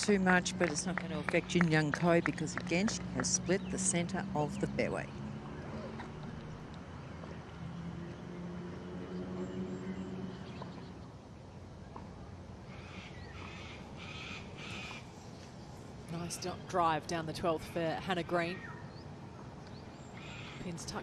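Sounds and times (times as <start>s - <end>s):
low outdoor hum: 0.0s - 21.0s
bird harsh calls: 12.7s - 15.1s, 20.0s - 20.7s.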